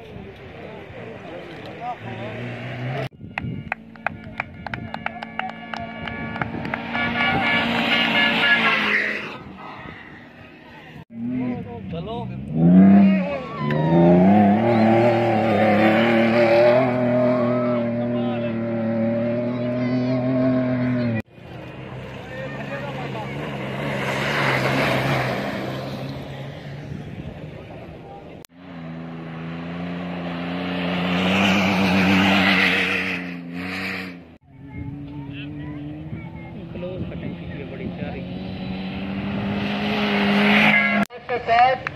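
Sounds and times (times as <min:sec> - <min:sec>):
jeep engines revving past: 0:00.5 - 0:41.1.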